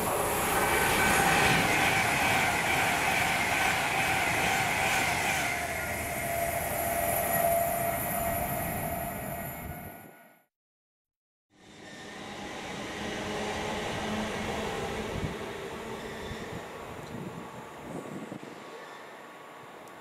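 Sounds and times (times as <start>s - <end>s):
electric train passing at speed: 0.0s - 10.4s, 11.6s - 20.0s
train whine: 0.0s - 10.5s, 11.6s - 20.0s.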